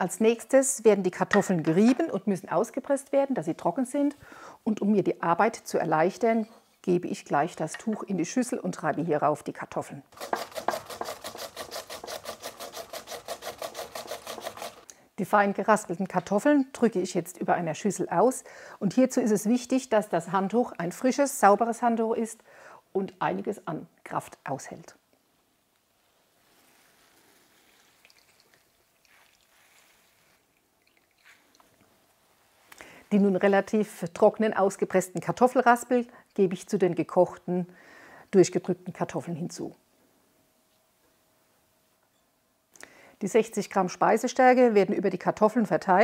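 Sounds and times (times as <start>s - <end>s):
potato grating rasps: 10.1s - 14.9s
soft squeezes of cloth: 25.9s - 33.0s
water dripping into glass bowl: 28.0s - 29.4s, 30.5s - 31.6s.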